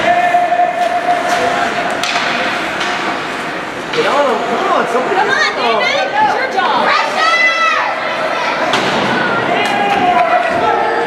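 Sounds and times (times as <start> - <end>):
rink crowd noise: 0.0 - 11.0
hockey sticks and puck knocking: 0.8 - 4.3.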